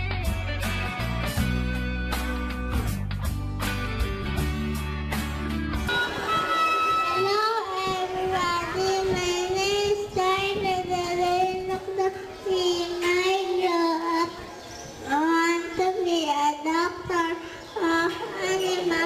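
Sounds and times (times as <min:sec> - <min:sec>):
girl singing into a microphone: 0:07.2 - 0:14.4.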